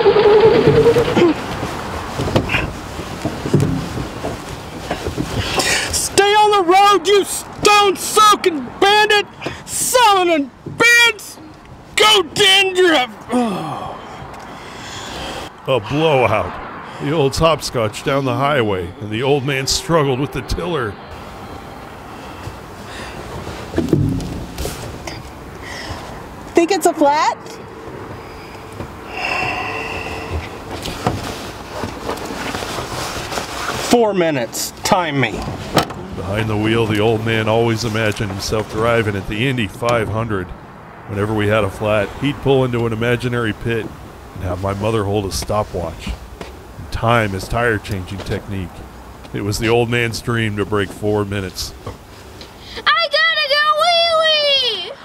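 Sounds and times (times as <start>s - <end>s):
car engine and road noise: 0.0s - 55.0s
car rumbling hiss: 13.3s - 23.9s, 27.8s - 33.9s
light knocks: 23.8s - 25.0s.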